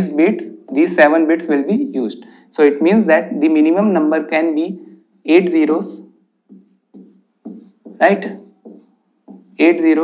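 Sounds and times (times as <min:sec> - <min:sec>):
marker scratching on whiteboard: 0:00.0 - 0:01.3, 0:06.4 - 0:10.0.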